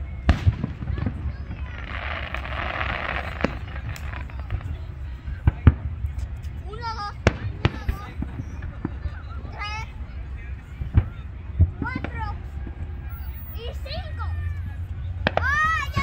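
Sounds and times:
fireworks bursting with sharp bangs: 0.0s - 10.1s, 10.7s - 13.9s, 15.2s - 16.0s
crackling hiss of fireworks: 0.0s - 13.9s.

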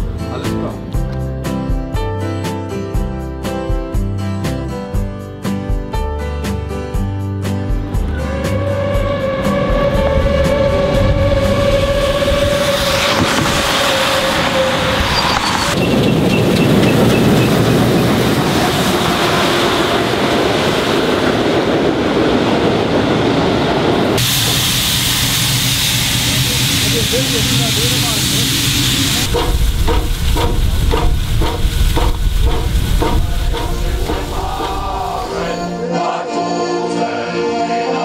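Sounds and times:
locomotive rough rushing noise: 8.0s - 35.7s
steam locomotive whistle: 8.2s - 18.0s, 24.2s - 35.6s
steam hissing: 24.2s - 35.7s.

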